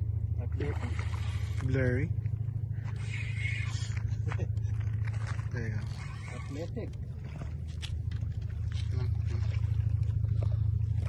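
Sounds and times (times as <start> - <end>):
low pulsing rumble: 0.0 - 11.0.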